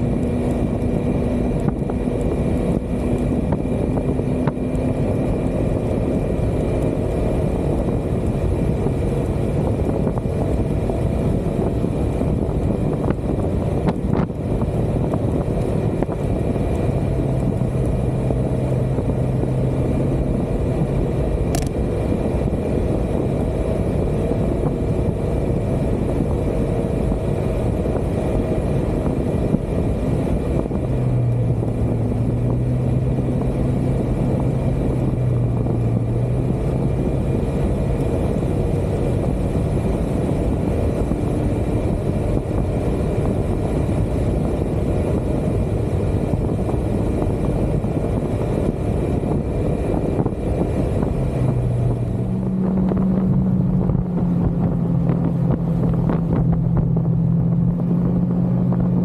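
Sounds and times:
scooter engine drone: 0.0s - 59.0s
scooter road noise: 0.0s - 59.0s
wind rushing over microphone: 0.0s - 59.0s.

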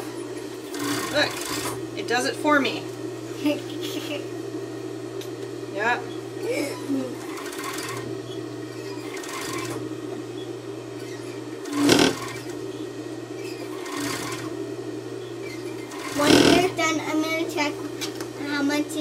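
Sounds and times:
overlock sewing machine humming: 0.0s - 4.4s, 5.7s - 19.0s.

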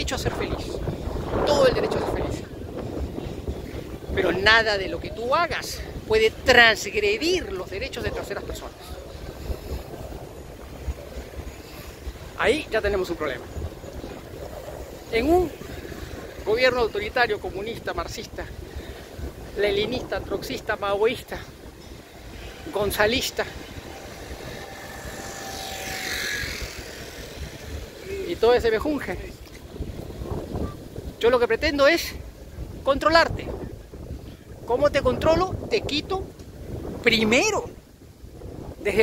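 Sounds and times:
street noise: 0.0s - 34.7s
wind buffeting microphone: 0.0s - 39.0s.

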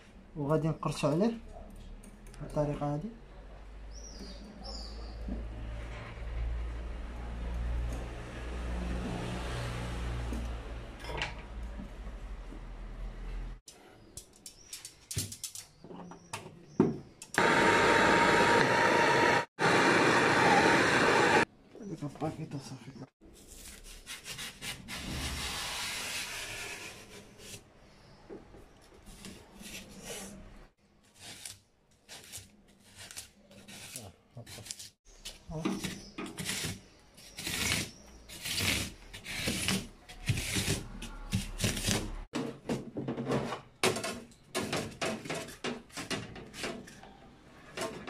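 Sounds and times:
blade scraping foam: 23.4s - 27.6s, 31.1s - 35.0s, 35.8s - 42.2s.

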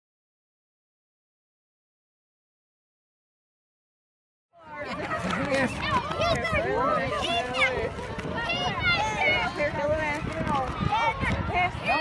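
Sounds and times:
children shouting and chattering: 4.6s - 12.0s.

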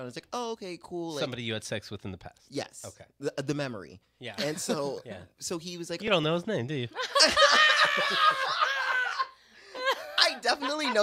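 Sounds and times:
people laughing hard: 7.0s - 11.0s.

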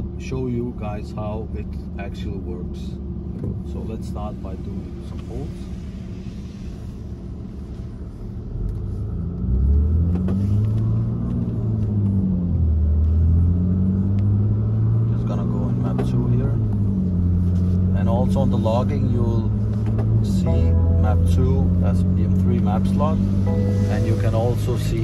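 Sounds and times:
car engine revving: 3.6s - 25.0s.

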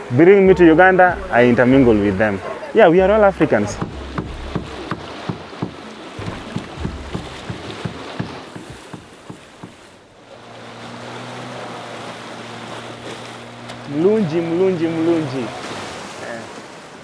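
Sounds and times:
outboard motor running: 0.5s - 15.7s
water splashing against rocks: 3.0s - 17.0s.

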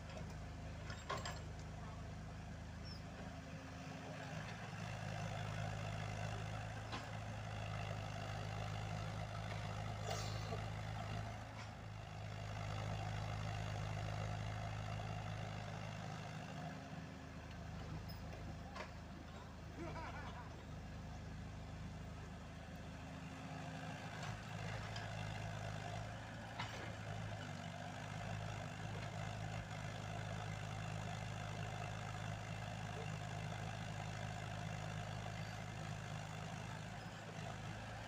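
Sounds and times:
excavator diesel engine working: 0.0s - 38.0s.

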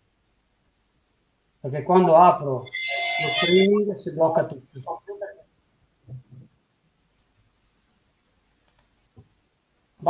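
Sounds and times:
faint computer clicks: 8.6s - 9.0s.

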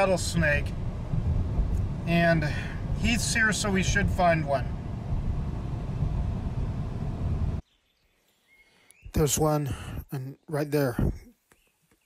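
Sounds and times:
car cabin rumble: 0.0s - 7.6s.

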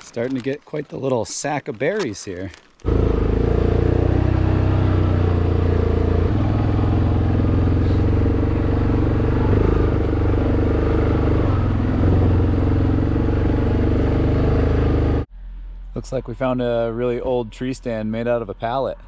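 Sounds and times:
atv engine running: 2.9s - 15.3s.

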